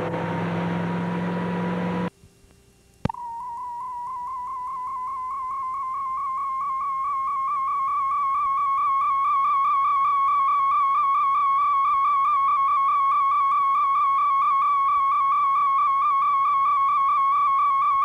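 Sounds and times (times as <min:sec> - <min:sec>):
warbling high electronic tone: 0:03.1 - 0:18.0.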